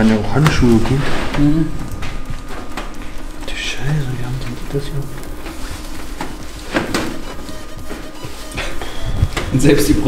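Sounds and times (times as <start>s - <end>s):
background music: 2.1s - 10.0s.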